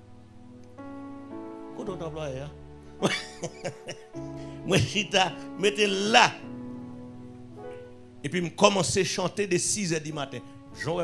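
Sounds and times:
background music of held chords: 0.0 - 11.0.

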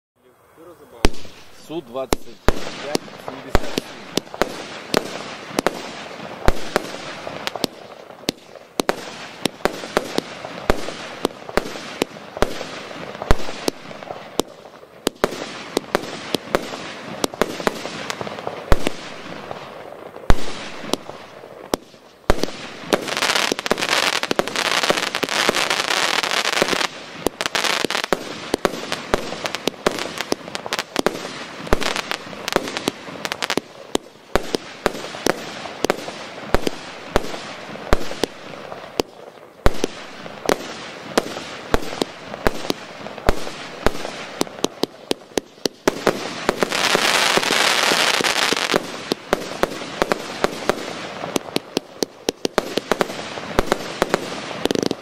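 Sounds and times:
firework crackle: 0.3 - 55.0
firework bangs: 0.8 - 55.0.

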